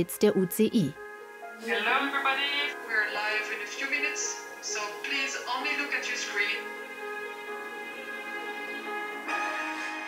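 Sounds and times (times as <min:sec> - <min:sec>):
person speaking over video call: 0:00.0 - 0:00.9
background music sustained notes: 0:00.0 - 0:10.0.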